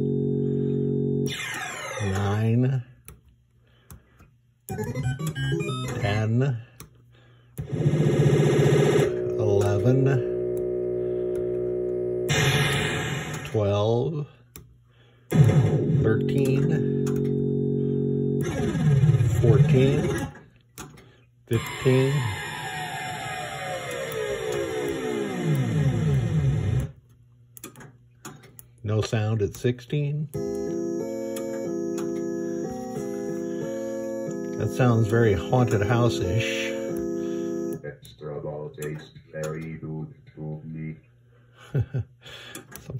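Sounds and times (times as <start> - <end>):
pulsing synthesized tone: 0.0 - 2.2, 7.7 - 13.6
electronic tone gliding down: 1.3 - 2.2.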